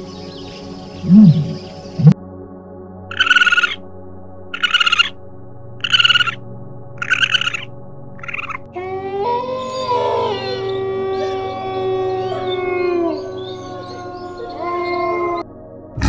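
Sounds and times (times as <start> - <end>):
raccoon dogs calling: 5.8 - 6.4, 7.0 - 15.4
wolves howling: 8.7 - 15.5.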